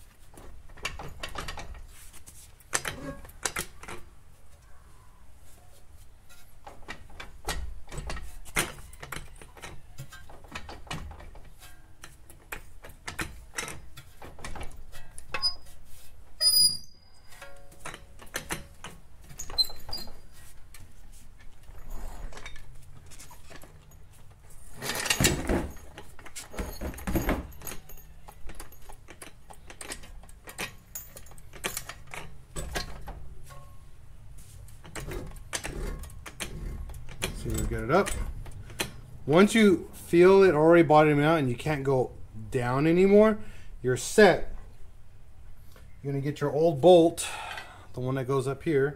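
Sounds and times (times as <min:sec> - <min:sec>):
clicks and metal knocks: 0:00.3 - 0:04.2, 0:06.2 - 0:15.7, 0:17.2 - 0:33.9, 0:34.6 - 0:39.7.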